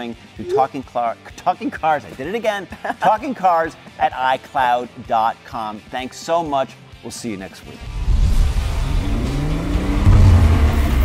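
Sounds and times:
background music: 0.0s - 11.0s
car engine accelerating: 7.9s - 11.0s.

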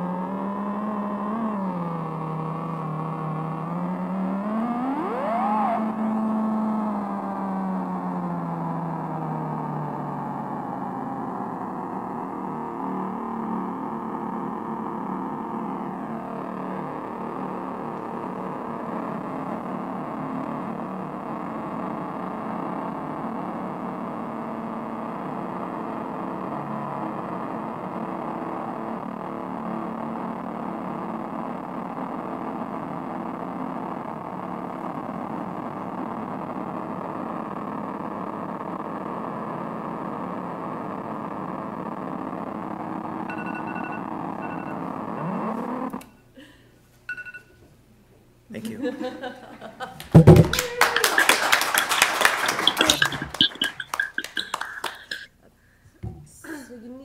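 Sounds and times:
low tone gliding upward: 0.0s - 19.8s
synthesizer drone: 0.0s - 43.5s, 51.1s - 55.3s
high synth tones switching: 0.1s - 20.8s, 51.8s - 55.3s.

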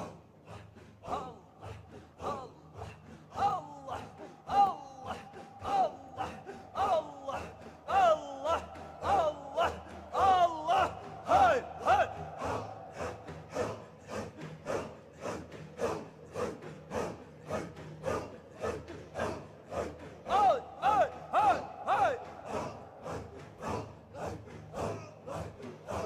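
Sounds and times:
men chanting in unison: 0.0s - 26.0s.

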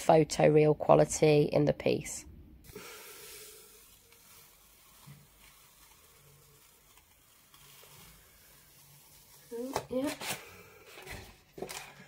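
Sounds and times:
paper peeling crackle: 3.8s - 12.0s.

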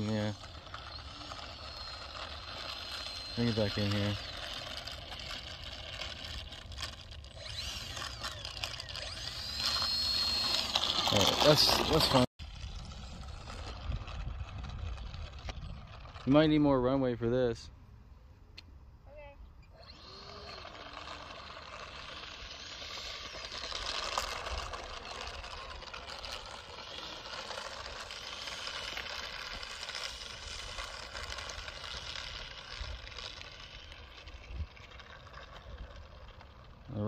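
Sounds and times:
electric ducted fan whine: 0.0s - 18.0s, 19.6s - 37.0s.

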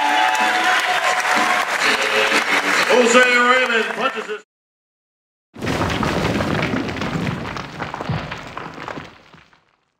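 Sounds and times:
rubble rumbling and clattering: 5.6s - 9.9s
small sharp stone cracks: 5.7s - 9.9s.

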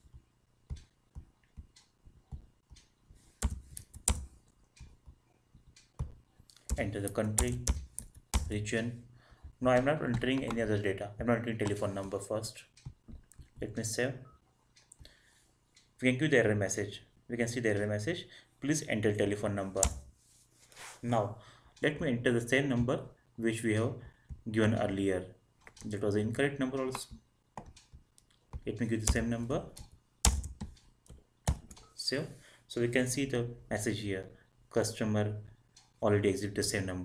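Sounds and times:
keyboard key presses: 0.7s - 8.6s, 9.8s - 10.8s, 26.9s - 31.9s
person speaking: 6.5s - 14.3s, 16.0s - 20.1s, 20.8s - 27.2s, 28.6s - 29.9s, 31.5s - 37.0s.

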